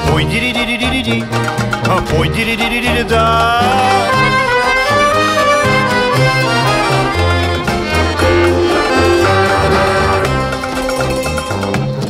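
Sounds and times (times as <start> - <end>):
accordion melody: 0.0 - 12.0
folk band playing: 0.0 - 12.0.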